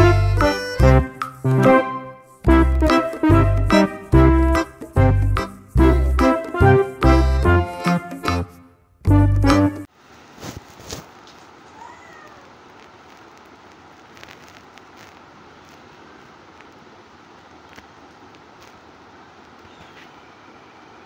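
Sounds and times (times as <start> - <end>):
faint room hiss: 0.0 - 9.1, 9.8 - 21.0
small clicks: 12.2 - 18.8.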